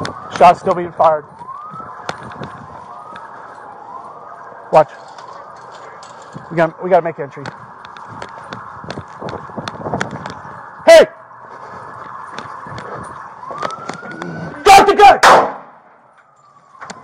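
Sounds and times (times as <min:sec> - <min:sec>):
footsteps clicking and clattering: 0:00.0 - 0:10.8, 0:11.4 - 0:14.4
police siren wailing: 0:00.0 - 0:17.0
loud shouts: 0:14.5 - 0:15.4
sharp bangs: 0:14.8 - 0:16.0.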